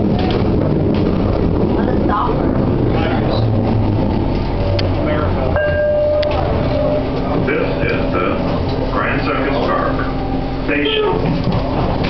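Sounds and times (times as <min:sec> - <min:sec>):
rumble of moving rail car: 0:00.0 - 0:12.0
steady high tone: 0:04.6 - 0:11.2.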